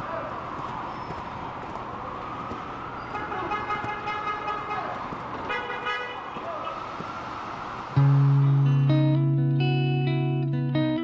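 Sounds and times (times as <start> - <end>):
city street traffic hum: 0.0 - 11.0
car horn tooting: 3.1 - 6.3.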